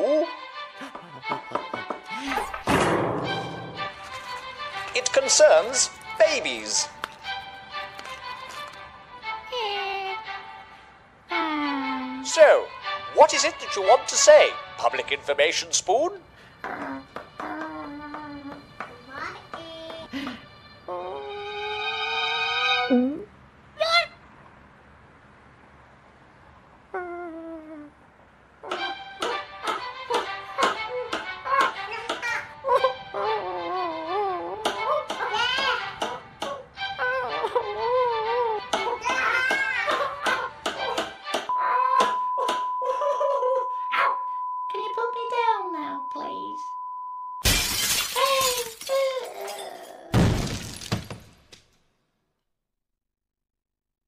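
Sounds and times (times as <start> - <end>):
glass breaking crash: 47.4 - 51.4.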